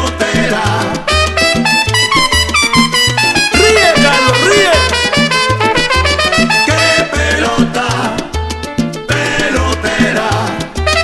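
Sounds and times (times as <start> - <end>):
instrumental salsa music: 0.0 - 11.0.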